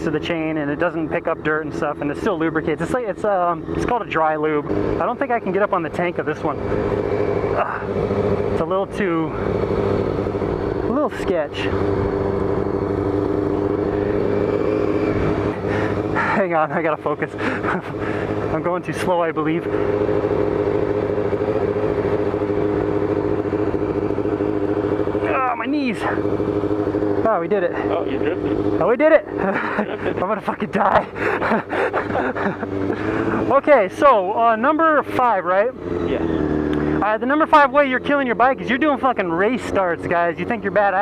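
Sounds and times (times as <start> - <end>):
motorcycle engine running: 0.0 - 41.0
breathless laughing: 7.6 - 8.0, 15.4 - 16.6, 17.3 - 18.5, 29.3 - 33.5.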